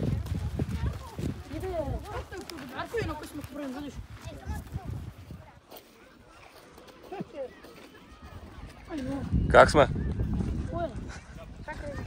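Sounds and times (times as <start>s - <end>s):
wind rumble on microphone: 0.0s - 5.6s, 8.3s - 12.0s.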